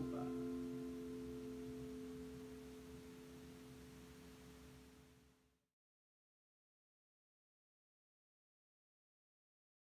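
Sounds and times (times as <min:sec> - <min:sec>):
pedal steel guitar chord ringing: 0:00.0 - 0:03.8.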